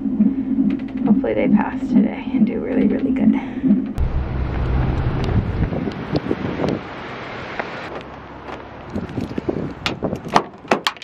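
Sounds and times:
wind buffeting microphone: 0.0s - 7.9s, 8.8s - 10.8s
footsteps on concrete: 7.9s - 10.2s.

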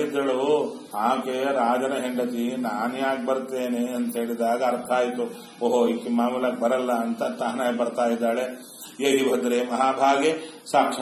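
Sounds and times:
man chanting verses: 0.0s - 11.0s.

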